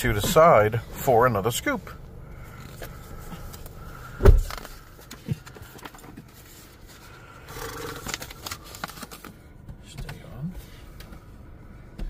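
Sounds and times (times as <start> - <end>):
faint rustling and scraping: 2.4 - 9.3.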